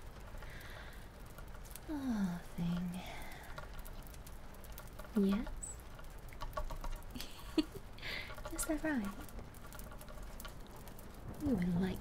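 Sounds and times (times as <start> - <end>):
woman's voice: 1.9 - 3.3, 5.2 - 5.8, 8.5 - 9.2, 11.4 - 12.0.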